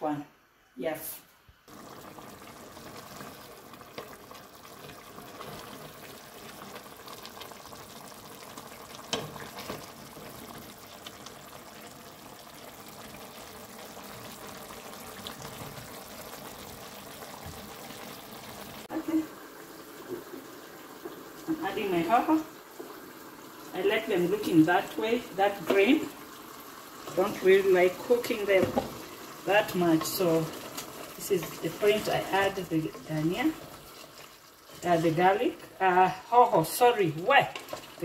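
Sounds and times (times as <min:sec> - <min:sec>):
stew bubbling and sizzling: 0:00.5 - 0:38.0.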